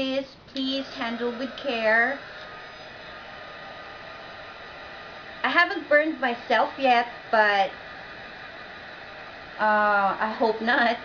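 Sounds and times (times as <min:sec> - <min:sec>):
heat tool blowing: 0:00.7 - 0:11.0.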